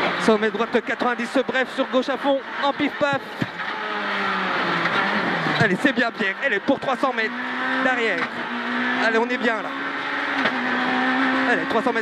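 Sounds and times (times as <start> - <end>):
rally car engine running hard: 0.0 - 12.0.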